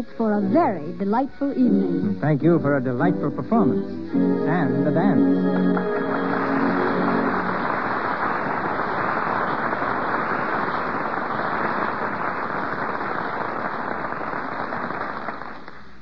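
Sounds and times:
studio audience applauding: 4.5 - 16.0.

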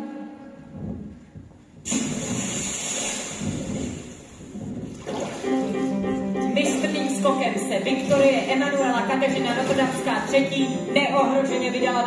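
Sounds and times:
loud hissing noise: 1.9 - 4.5.

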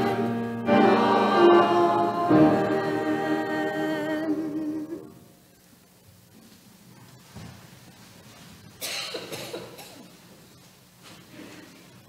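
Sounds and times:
person coughing: 8.8 - 10.1.

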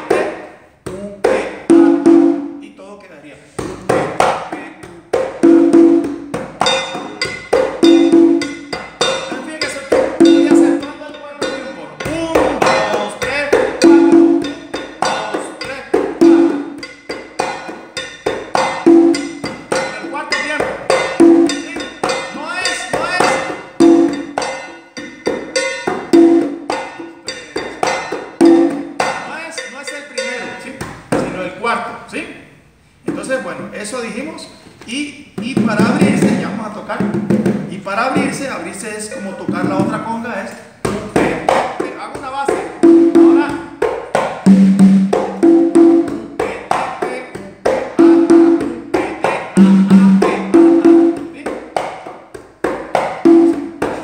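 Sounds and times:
congas played by hand: 0.0 - 2.8, 3.5 - 31.8, 32.7 - 54.0.

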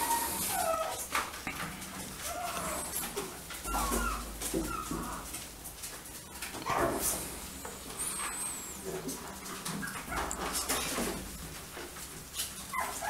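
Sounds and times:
puppy crying high-pitched: 0.0 - 1.0, 2.2 - 5.3.

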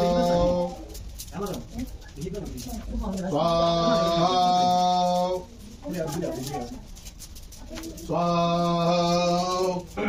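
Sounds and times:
man chanting mantra: 0.0 - 1.0, 3.4 - 5.5, 8.1 - 10.0.

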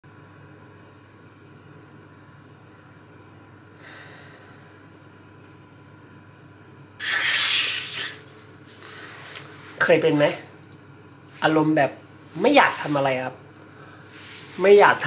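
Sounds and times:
room hum: 0.0 - 15.0
person breathing: 3.8 - 4.8, 7.0 - 9.4.

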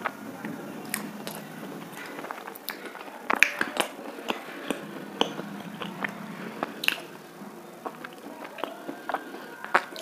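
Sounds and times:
mouth chewing with crunches: 0.0 - 10.0.

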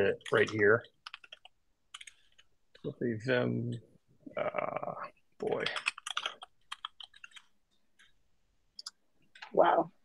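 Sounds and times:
computer keyboard typing: 0.0 - 2.5, 5.4 - 7.6.

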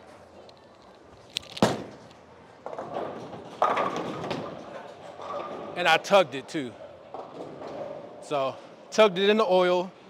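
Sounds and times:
bowling ball thud and rolling: 1.6 - 6.2, 7.1 - 8.2
bowling pins clattering: 2.6 - 8.3.

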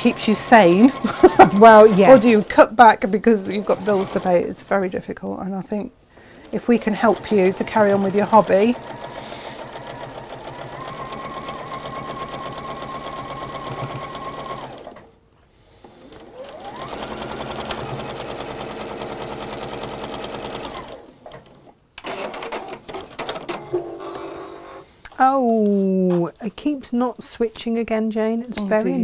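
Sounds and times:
electric sewing machine stitching: 0.0 - 2.6, 3.4 - 4.6, 6.4 - 15.1, 16.0 - 23.2.

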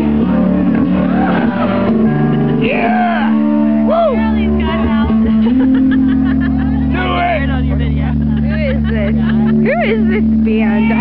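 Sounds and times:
people shouting and whooping: 0.0 - 7.6
amplified electric instruments droning: 0.0 - 11.0.

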